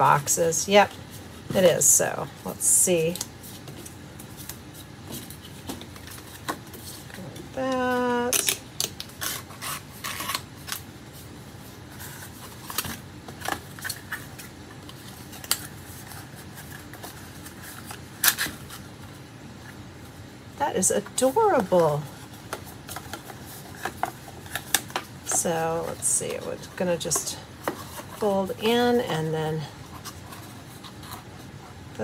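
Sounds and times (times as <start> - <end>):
paperboard boxes being folded: 0.2 - 31.9.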